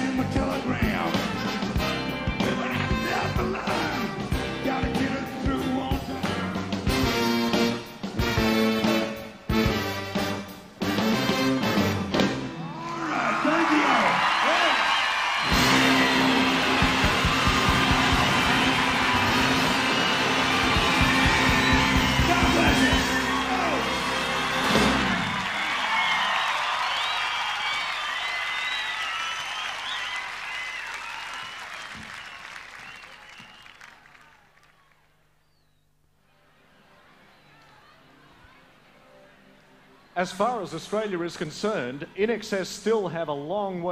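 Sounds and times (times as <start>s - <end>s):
live rock band playing: 0.1s - 12.6s, 15.4s - 25.3s
audience cheering and applauding: 12.5s - 35.2s.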